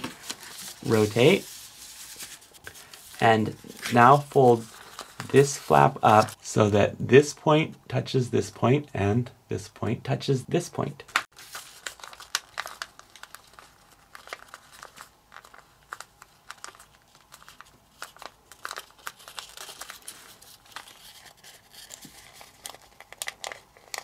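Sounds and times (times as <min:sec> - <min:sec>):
paper crinkling while folded: 0:00.0 - 0:06.5, 0:11.2 - 0:24.0.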